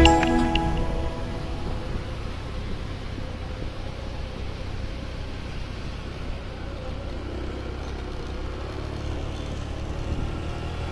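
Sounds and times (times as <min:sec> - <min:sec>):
faint steady tone: 0:00.0 - 0:02.4.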